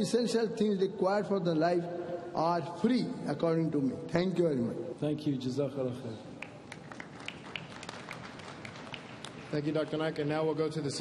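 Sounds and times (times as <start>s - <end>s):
audience applauding: 6.4s - 9.8s.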